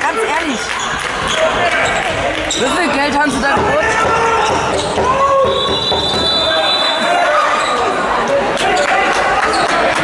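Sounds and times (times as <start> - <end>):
ball bouncing on hall floor: 0.8 - 6.4.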